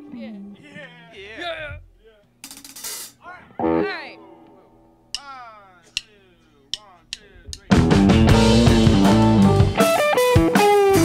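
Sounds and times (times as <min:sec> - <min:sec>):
drumsticks clicking together: 0:05.1 - 0:07.8.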